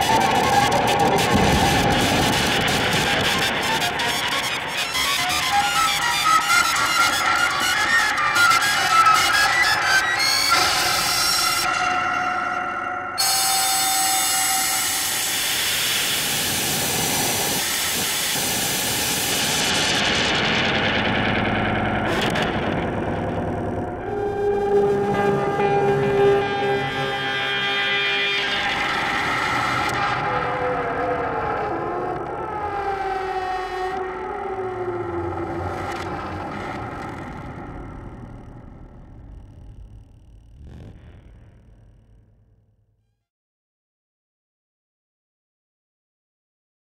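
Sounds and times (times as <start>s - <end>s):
falling synth pitch glides: 33.9s - 42.9s
held synth tones: 37.0s - 42.8s.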